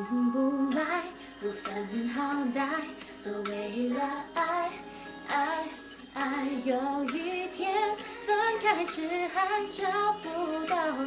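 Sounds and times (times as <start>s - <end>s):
woman singing pop song: 0.0s - 11.0s.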